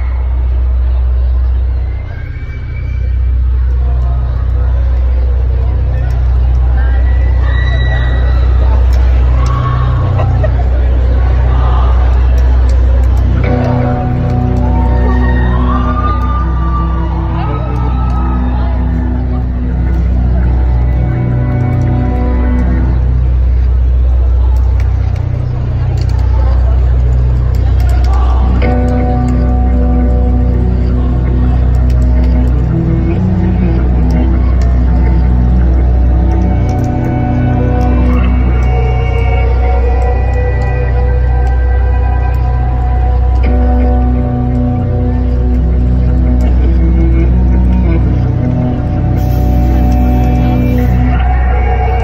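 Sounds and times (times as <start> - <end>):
crowd cheering and screaming: 0.0 - 52.0
deep bass drone: 0.0 - 52.0
whistles: 1.7 - 3.4.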